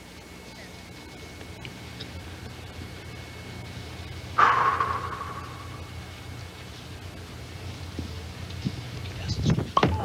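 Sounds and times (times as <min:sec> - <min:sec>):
steady low hum: 0:00.0 - 0:10.0
ringing crash: 0:04.4 - 0:06.0.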